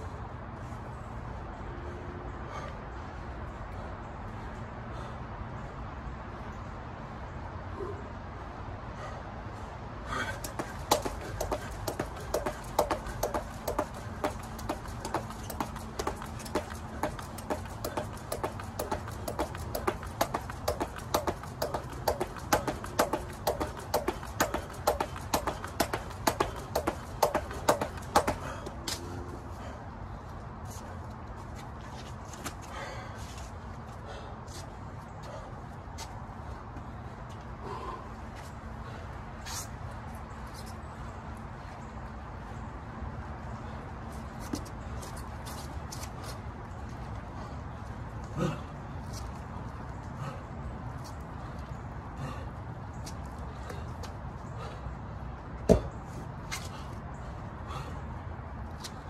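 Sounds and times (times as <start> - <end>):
jump rope slapping rubber mat: 10.1 - 29.0.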